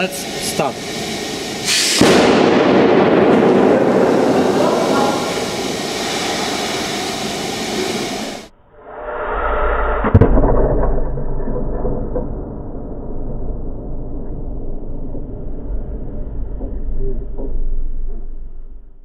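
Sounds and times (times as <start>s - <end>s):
aerosol foam hissing: 0.0s - 2.5s, 3.2s - 8.5s
low rumble: 0.0s - 19.0s.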